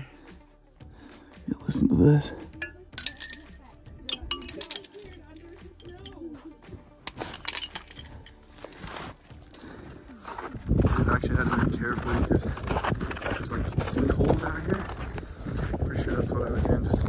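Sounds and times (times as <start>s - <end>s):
icicles clinking: 2.6s - 6.3s, 7.1s - 9.8s.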